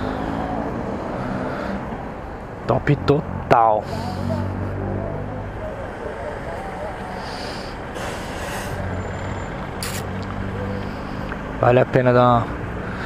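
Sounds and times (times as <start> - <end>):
street traffic: 0.0 - 13.0
short sharp hiss: 9.8 - 10.1.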